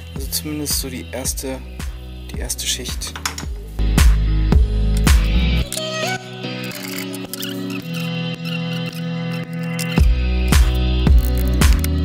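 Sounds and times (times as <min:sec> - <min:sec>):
electronic music with deep bass: 0:00.0 - 0:12.0.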